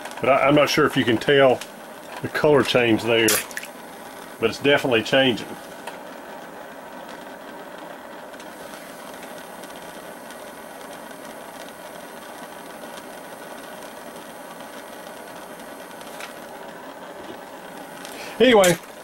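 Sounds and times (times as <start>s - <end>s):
torch flame hissing: 0.0s - 19.0s.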